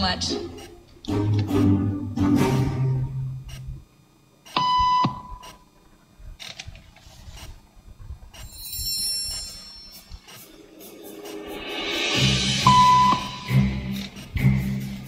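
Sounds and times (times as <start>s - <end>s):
short electronic beep: 12.6s - 13.6s.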